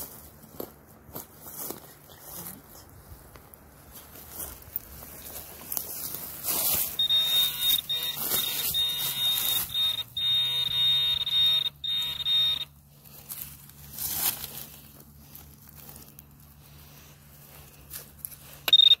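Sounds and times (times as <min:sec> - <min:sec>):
soil scraping: 0:03.8 - 0:10.7, 0:12.9 - 0:19.0
metal detector buzzing high tone: 0:06.4 - 0:13.2, 0:18.6 - 0:19.0.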